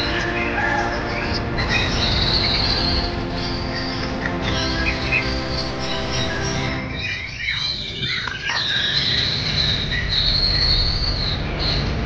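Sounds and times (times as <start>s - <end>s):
background music: 0.0s - 12.0s
songbirds whistling: 0.0s - 12.0s.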